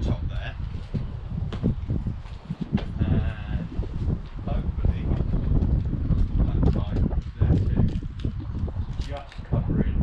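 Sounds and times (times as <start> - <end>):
wind buffeting microphone: 0.0 - 10.0
footstep knocks: 0.8 - 3.0.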